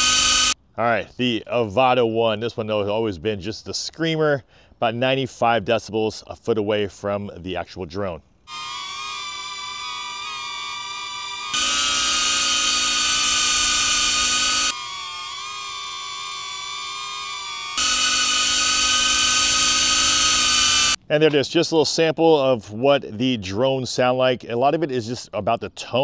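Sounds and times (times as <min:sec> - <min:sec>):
loud high drone propeller whine: 0:08.5 - 0:21.0.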